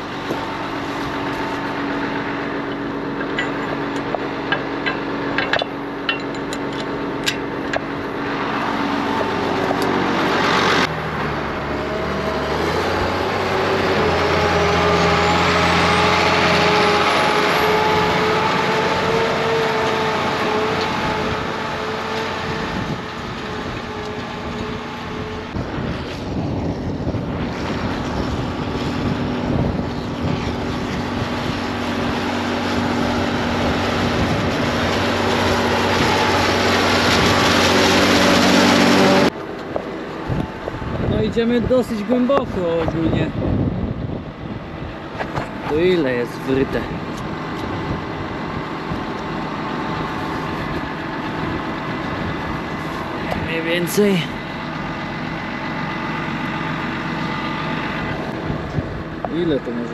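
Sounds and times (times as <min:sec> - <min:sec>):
tractor diesel engine under load: 0:00.0 - 0:59.9
sharp clicks and knocks: 0:02.7 - 0:07.9.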